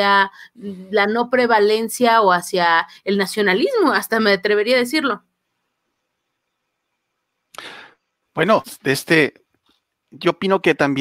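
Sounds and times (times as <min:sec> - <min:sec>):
sharp intake of breath: 0:07.6 - 0:08.0.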